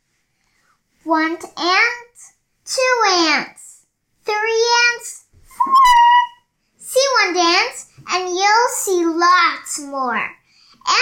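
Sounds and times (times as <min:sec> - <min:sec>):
child's high squeaky voice: 0:05.5 - 0:06.5.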